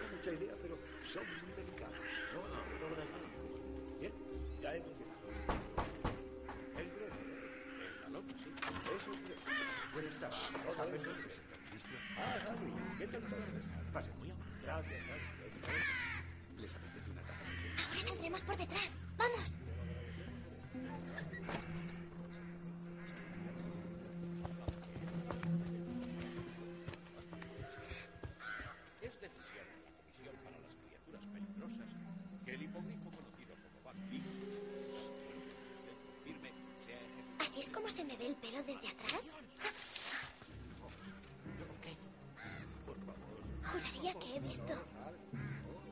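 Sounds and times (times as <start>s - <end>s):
crow cawing: 0.0s - 45.9s
sharp knocks and thuds: 5.4s - 6.8s.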